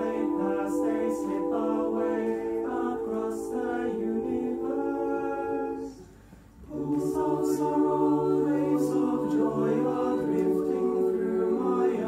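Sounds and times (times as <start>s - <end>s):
mixed choir singing a cappella: 0.0s - 12.0s.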